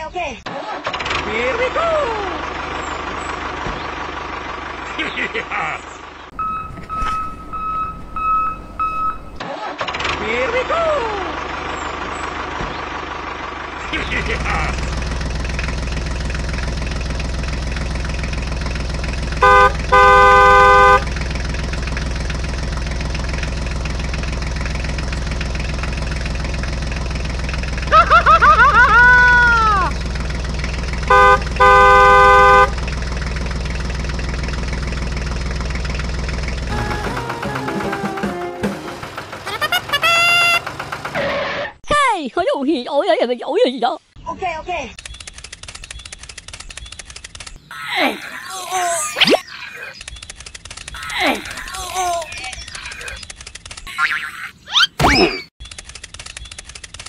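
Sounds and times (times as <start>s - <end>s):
tractor engine running: 0.5s - 41.7s, 45.0s - 47.8s, 49.9s - 57.0s
electronic beep tone: 6.4s - 9.4s
horn honking: 19.3s - 21.5s, 31.0s - 33.0s, 36.7s - 40.8s
squeaky cartoon voices chattering: 47.7s - 50.1s, 50.9s - 53.3s, 53.9s - 55.5s.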